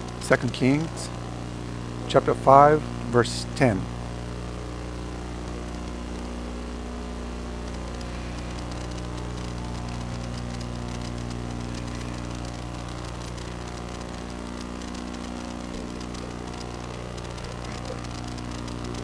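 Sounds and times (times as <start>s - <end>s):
faint crackling ticks: 0.0s - 2.0s, 5.0s - 19.0s
electrical hum with hiss: 0.0s - 19.0s.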